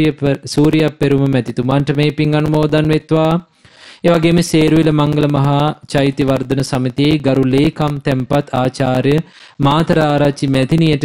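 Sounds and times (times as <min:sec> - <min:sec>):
man reading aloud: 0:00.0 - 0:11.0.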